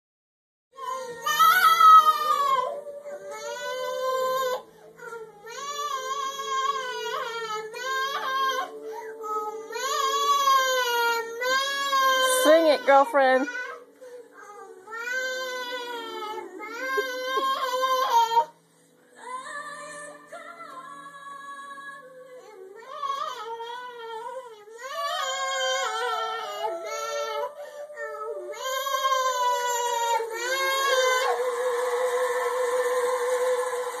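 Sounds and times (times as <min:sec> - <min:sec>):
person singing a long high note: 0:14.4 - 0:18.4, 0:24.9 - 0:34.0.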